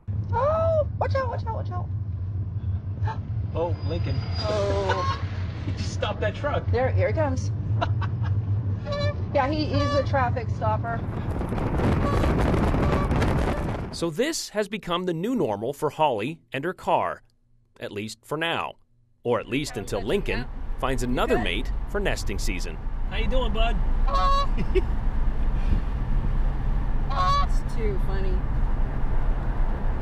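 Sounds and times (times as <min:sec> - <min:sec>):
car road noise: 0:00.0 - 0:14.0, 0:19.4 - 0:30.0
goose honking: 0:04.5 - 0:05.2, 0:08.8 - 0:10.2, 0:24.1 - 0:24.6, 0:27.1 - 0:27.6
wind rushing over microphone: 0:08.7 - 0:14.0, 0:25.0 - 0:30.0.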